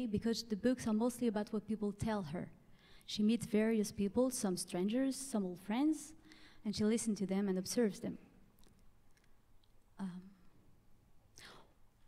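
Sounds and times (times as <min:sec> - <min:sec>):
woman speaking: 0:00.0 - 0:02.5, 0:03.1 - 0:08.2.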